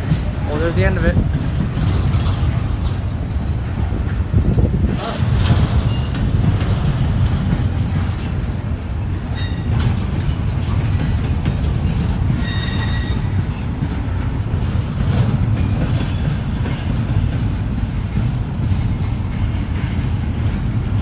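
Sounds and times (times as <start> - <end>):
train wheels rumbling on rail: 0.0 - 21.0
high-pitched wheel squeals: 9.3 - 9.8, 12.4 - 13.7.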